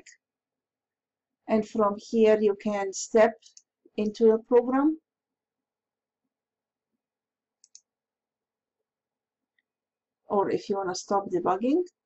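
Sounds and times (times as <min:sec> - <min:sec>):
computer mouse clicks: 0:07.6 - 0:07.9.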